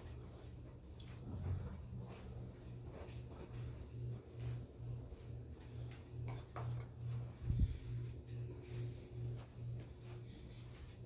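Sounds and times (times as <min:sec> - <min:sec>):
low pulsing hum: 0:00.0 - 0:11.0.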